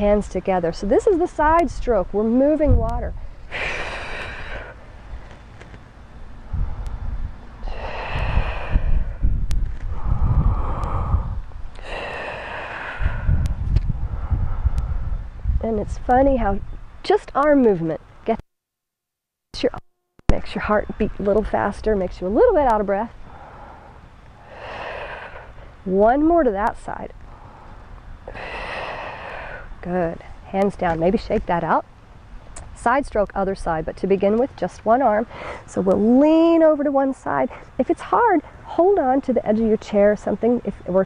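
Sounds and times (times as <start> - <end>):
woman's voice: 0.0 - 3.2, 15.6 - 18.4, 19.6 - 23.1, 25.9 - 27.1, 29.8 - 31.8, 32.6 - 41.0
woman breathing deeply: 3.4 - 4.9, 6.5 - 15.0, 23.2 - 25.8, 27.3 - 29.8
low rumble: 6.1 - 17.0.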